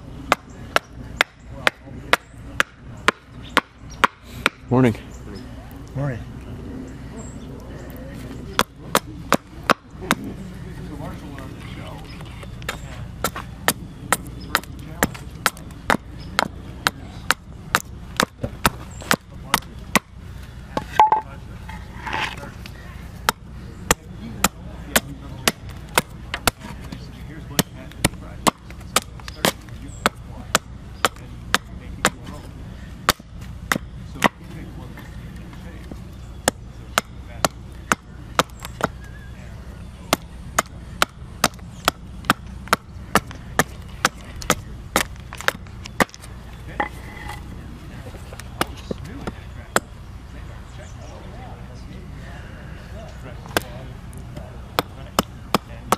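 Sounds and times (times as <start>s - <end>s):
hatchet chopping wood: 0.2s - 4.7s, 8.6s - 10.3s, 12.6s - 21.3s, 23.2s - 32.3s, 33.0s - 34.5s, 36.4s - 39.1s, 40.1s - 46.9s, 53.5s - 55.9s.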